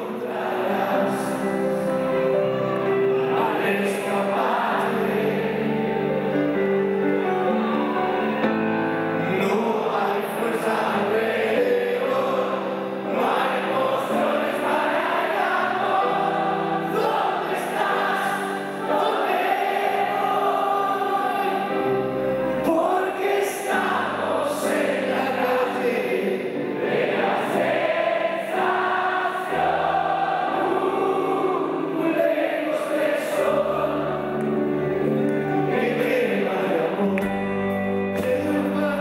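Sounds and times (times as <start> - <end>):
men singing together: 0.0 - 1.9, 3.3 - 5.9, 9.2 - 34.6, 35.5 - 37.5
electric guitar: 0.0 - 14.8, 33.4 - 39.0
grand piano: 0.0 - 39.0.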